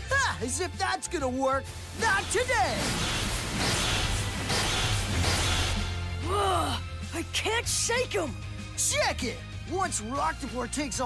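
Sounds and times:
loud background music: 0.0 - 11.0
crashing impacts: 2.1 - 6.1.

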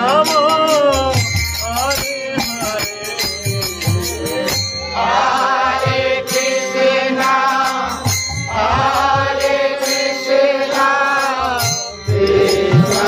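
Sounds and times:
harmonium: 0.0 - 13.0
percussion beat: 0.0 - 13.0
voices chanting: 5.0 - 13.0.

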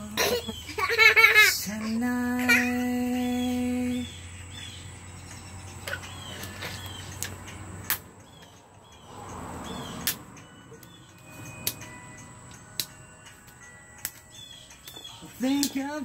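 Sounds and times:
small birds chirping: 0.0 - 16.0
sharp clicks: 10.0 - 11.9.

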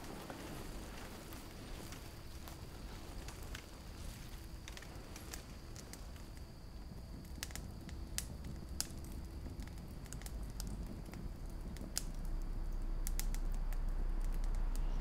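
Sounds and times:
campfire crackling: 0.0 - 15.0
low rumble: 8.4 - 15.0.

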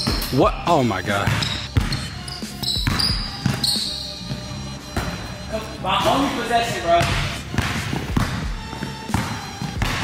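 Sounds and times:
background music: 0.0 - 10.0
basketball bouncing on hardwood: 2.8 - 3.6, 7.0 - 10.0.

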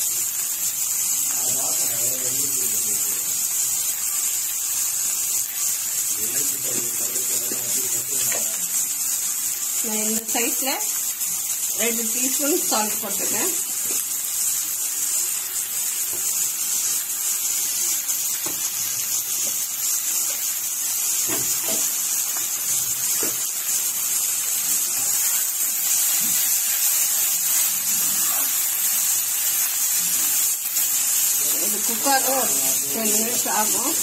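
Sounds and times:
onions sizzling in pan: 0.0 - 34.0.

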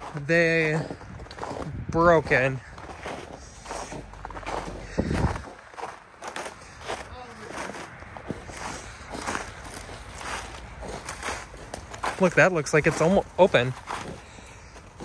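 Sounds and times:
footsteps on snow and dry brush: 0.0 - 15.0.

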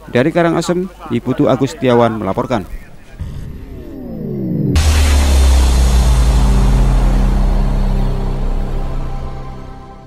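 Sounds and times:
deep held bass tones: 2.6 - 10.0
sudden hit: 2.7 - 10.0.

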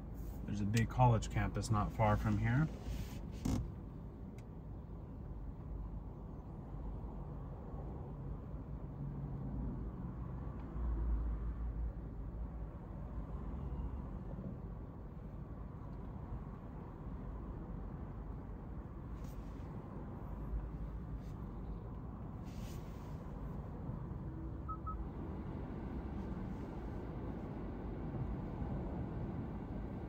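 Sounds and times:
low rumble inside car: 0.0 - 30.0
vehicles passing outside: 0.0 - 30.0.

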